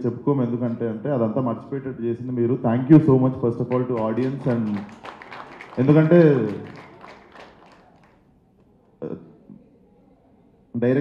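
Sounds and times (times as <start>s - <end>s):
speech echo in hall: 0.0s - 11.0s.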